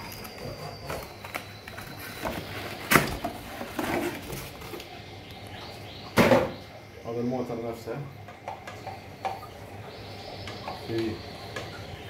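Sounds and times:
cardboard rustling: 0:00.0 - 0:04.9.

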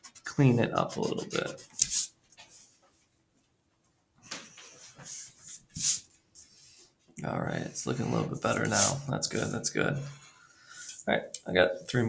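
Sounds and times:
pencil scratching on paper: 0:00.0 - 0:02.2, 0:07.6 - 0:11.0.

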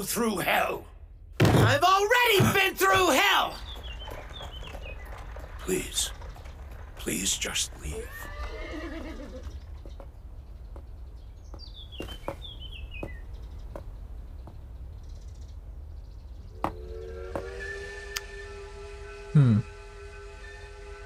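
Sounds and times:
bird chirping: 0:00.0 - 0:17.4.

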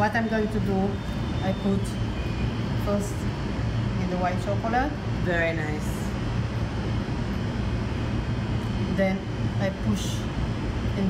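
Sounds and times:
ventilation fan hum: 0:00.0 - 0:11.0.

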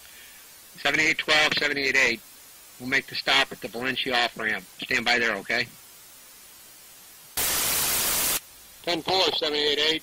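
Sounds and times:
faint radio hiss: 0:00.0 - 0:10.0
loud burst of radio static: 0:07.3 - 0:10.0.

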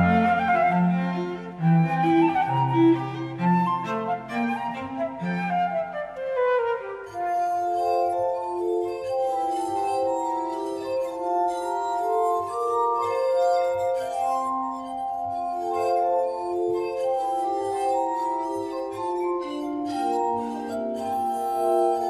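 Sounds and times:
cello: 0:00.0 - 0:22.0
flute: 0:00.0 - 0:22.0
glass harmonica melody: 0:00.0 - 0:22.0
oboe: 0:00.0 - 0:22.0
viola: 0:00.0 - 0:22.0.

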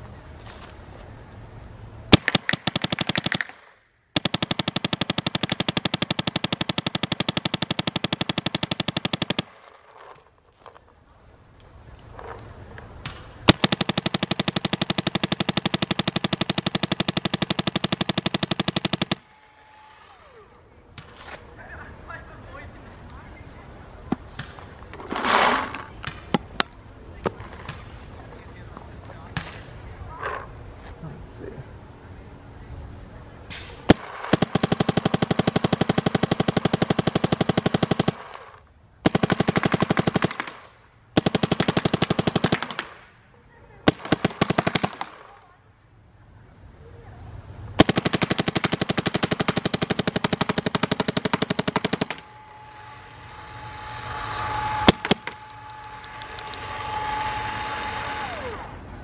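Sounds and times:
paintball marker rapid firing: 0:02.1 - 0:09.7, 0:13.0 - 0:19.3, 0:33.9 - 0:40.6, 0:41.2 - 0:43.0, 0:43.9 - 0:45.3, 0:47.8 - 0:52.3, 0:54.8 - 0:56.7.

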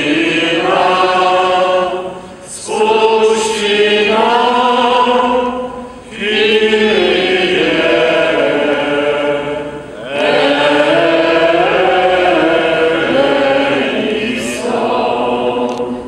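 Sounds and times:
group singing a hymn: 0:00.0 - 0:16.0.

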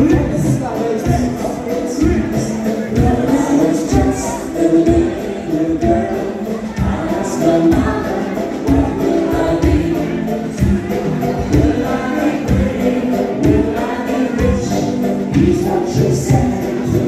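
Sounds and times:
live band playing party song: 0:00.0 - 0:17.0
many voices singing together: 0:00.0 - 0:17.0.

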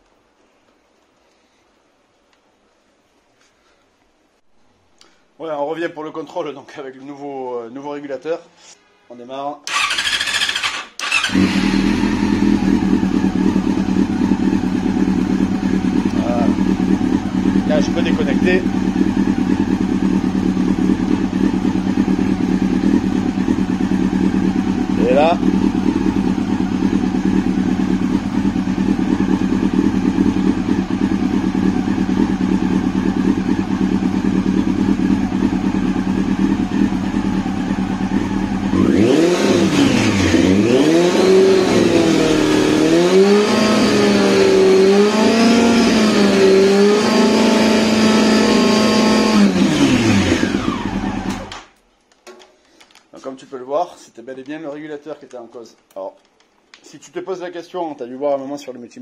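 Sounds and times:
motorcycle engine idling and revving: 0:09.7 - 0:51.8.

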